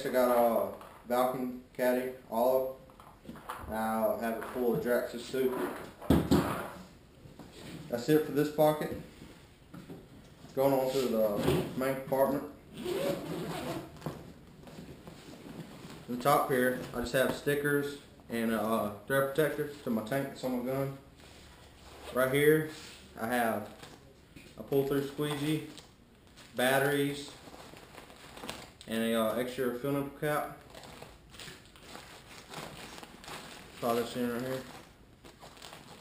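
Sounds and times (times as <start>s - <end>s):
zipper being pulled open: 12.7s - 14.0s
bag fabric rustling: 30.7s - 36.0s.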